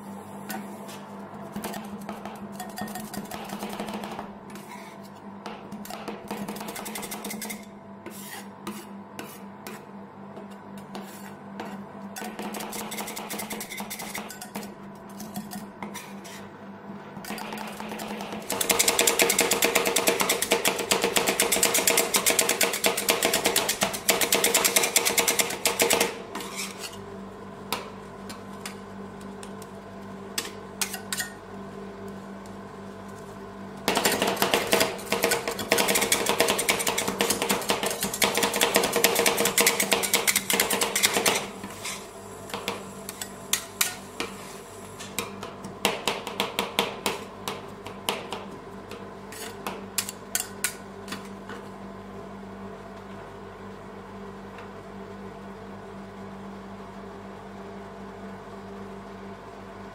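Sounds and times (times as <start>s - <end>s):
steady hum: 0.0s - 59.9s.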